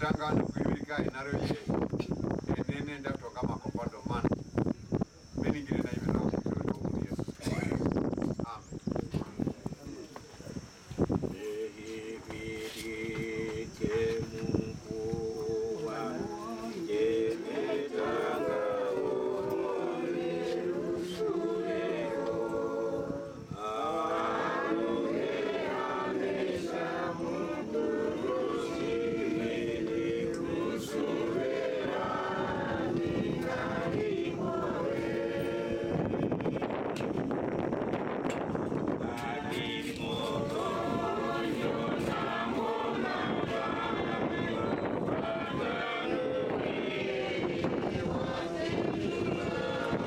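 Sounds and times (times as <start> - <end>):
group of voices singing in chorus: 11.0 - 50.0.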